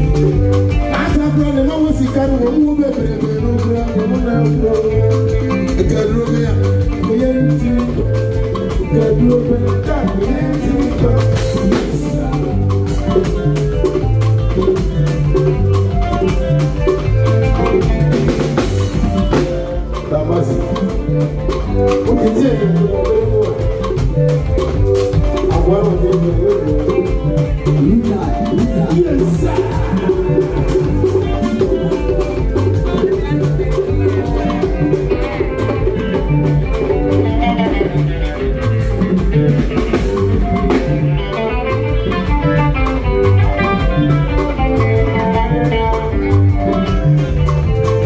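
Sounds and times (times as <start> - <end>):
person singing: 0.0 - 15.8, 17.0 - 48.0
live band playing dance beat: 0.0 - 48.0.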